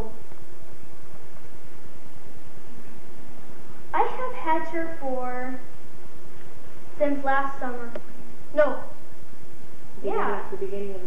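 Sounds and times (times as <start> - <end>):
low regular buzz: 0.0 - 11.0
tape hiss: 0.0 - 11.0.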